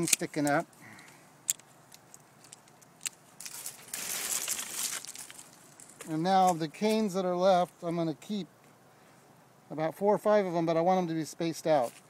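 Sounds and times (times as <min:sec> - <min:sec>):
rustling against microphone: 0:00.0 - 0:07.1.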